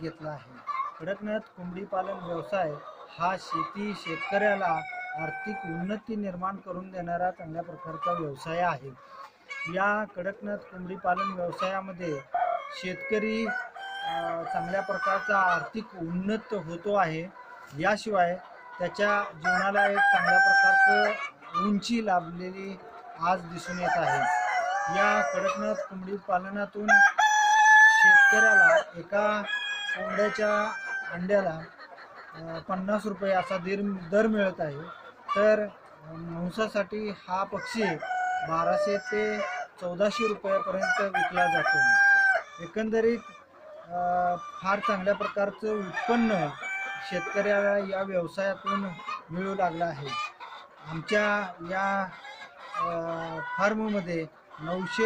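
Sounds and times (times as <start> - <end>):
chickens calling: 0.0 - 55.0
rooster crowing: 12.2 - 15.6, 19.4 - 21.2, 23.7 - 25.7, 26.9 - 31.2, 40.7 - 42.6, 45.9 - 47.4.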